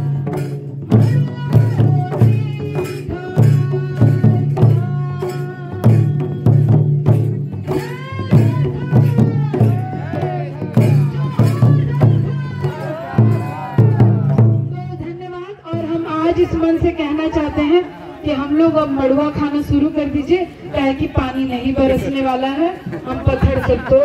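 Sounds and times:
stick-beaten barrel drum: 0.0s - 16.6s
folk singing: 7.8s - 14.7s.

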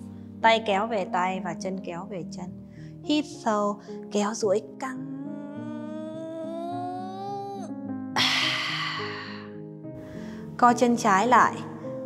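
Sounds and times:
soft background music: 0.0s - 12.0s
woman humming: 4.8s - 9.5s.

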